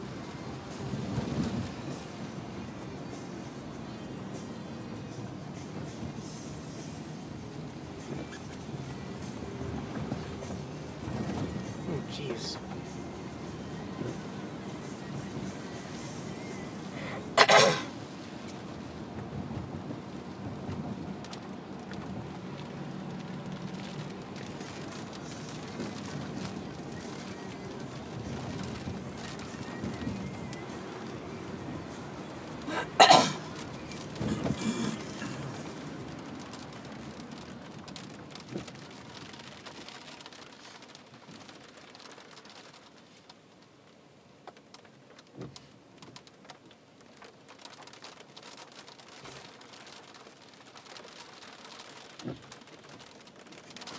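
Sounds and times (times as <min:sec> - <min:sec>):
rain on car roof: 0:00.0 - 0:53.9
road noise inside car: 0:00.0 - 0:53.9.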